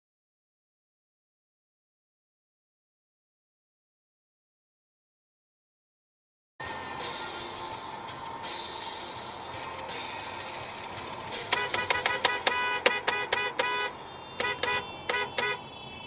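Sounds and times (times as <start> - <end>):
road noise: 6.6 - 16.0
car horn short blasts: 11.5 - 16.0.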